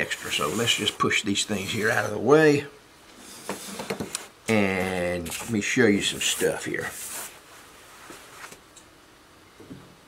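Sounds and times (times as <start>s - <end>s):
hand rubbing metal tabletop: 0.0s - 2.2s, 3.2s - 4.2s, 5.2s - 8.6s.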